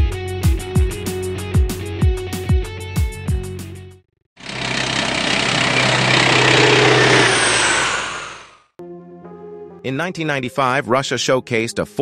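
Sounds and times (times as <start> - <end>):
loud engine roar: 4.4 - 8.7.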